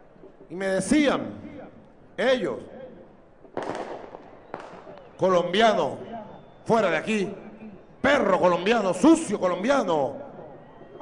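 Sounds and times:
firework bangs: 3.4s - 6.4s.

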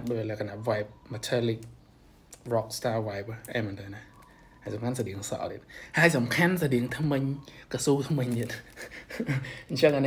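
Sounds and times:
man talking: 0.0s - 1.8s, 2.4s - 10.0s.

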